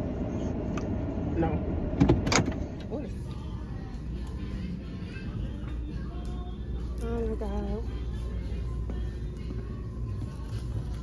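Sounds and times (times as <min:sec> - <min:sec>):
car cabin rumble: 0:00.0 - 0:03.1.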